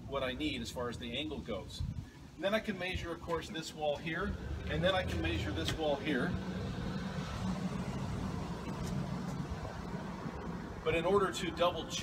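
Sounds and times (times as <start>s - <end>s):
low outdoor rumble: 2.6s - 12.0s.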